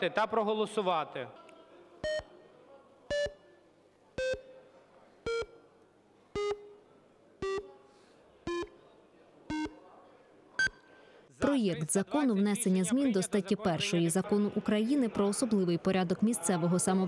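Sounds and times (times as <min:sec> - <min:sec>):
short electronic beeps: 0:03.1 - 0:03.6, 0:04.2 - 0:04.6, 0:05.3 - 0:05.6, 0:06.4 - 0:06.8, 0:07.4 - 0:07.8, 0:09.5 - 0:09.8, 0:10.6 - 0:10.9
short higher beep: 0:10.6 - 0:10.9.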